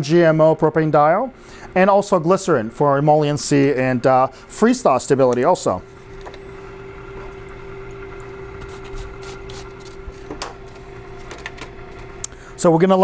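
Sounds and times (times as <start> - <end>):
stirrer motor humming: 0.1 - 13.0.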